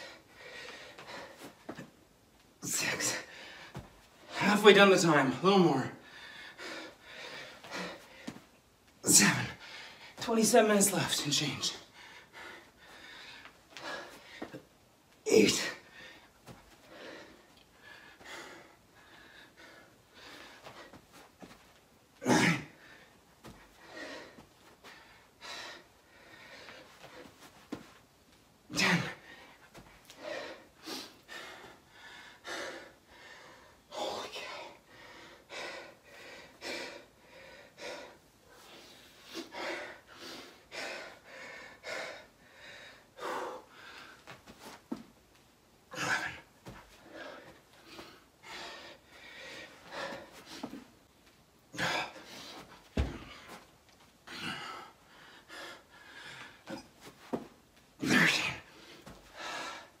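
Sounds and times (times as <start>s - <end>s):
man breathing hard: 0.0s - 2.0s, 2.6s - 4.6s, 5.9s - 8.6s, 9.2s - 10.2s, 11.7s - 14.7s, 15.3s - 21.6s, 22.2s - 27.9s, 28.8s - 44.6s, 45.9s - 51.0s, 51.8s - 57.5s, 58.4s - 60.0s.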